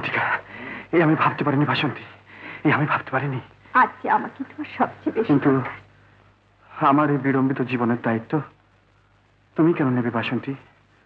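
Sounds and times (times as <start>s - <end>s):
film dialogue speech: 0.0s - 8.7s, 9.5s - 10.7s.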